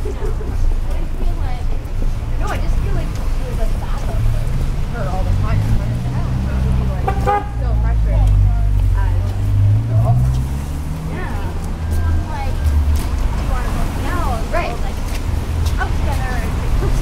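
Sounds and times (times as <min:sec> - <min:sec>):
passers-by voices: 0:00.0 - 0:17.0.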